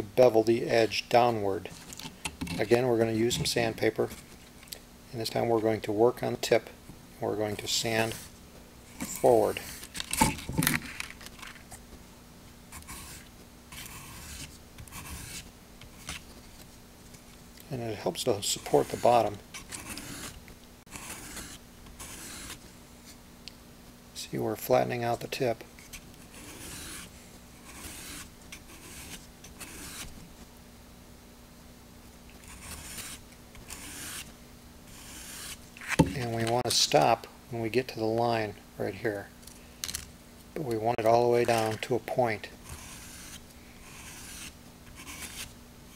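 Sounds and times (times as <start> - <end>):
sandpaper scraping wood: 12.8 - 16.2, 18.4 - 22.6, 26.2 - 30.2, 32.4 - 34.3, 34.9 - 35.6, 42.7 - 45.5.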